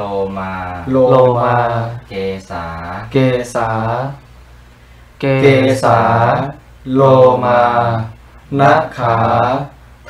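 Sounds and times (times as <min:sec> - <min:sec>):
man chanting slowly: 0:00.0 - 0:04.2, 0:05.2 - 0:09.8.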